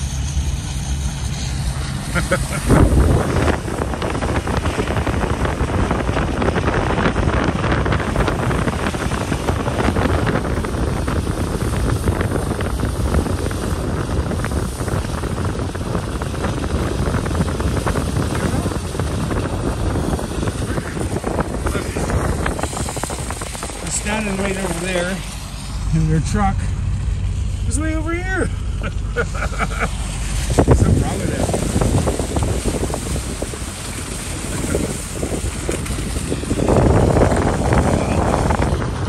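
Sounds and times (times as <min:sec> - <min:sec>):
pickup truck rumble: 0:00.0 - 0:39.0
wind rush: 0:00.0 - 0:39.0.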